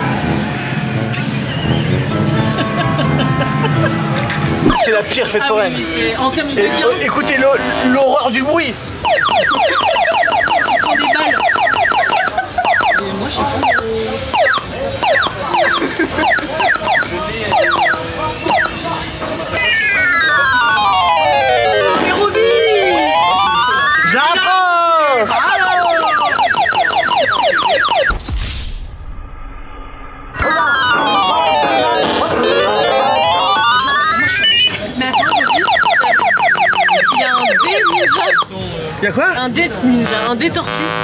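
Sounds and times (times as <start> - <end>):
claw machine electronic jingle: 4.6 - 5.3, 9.0 - 18.8, 19.4 - 24.5, 25.4 - 28.1, 30.4 - 38.5.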